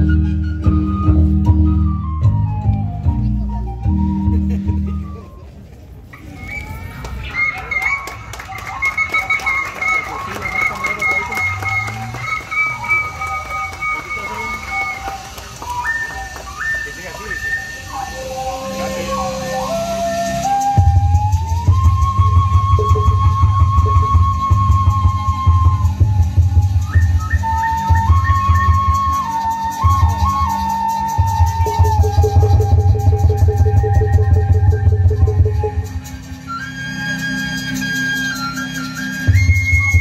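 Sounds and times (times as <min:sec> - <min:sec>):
flute playing trilled melody: 0:00.0 - 0:40.0.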